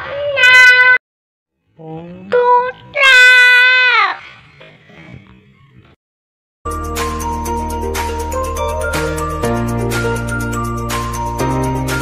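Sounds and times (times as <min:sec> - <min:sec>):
young child calling: 0:00.0 - 0:01.0, 0:02.4 - 0:04.2.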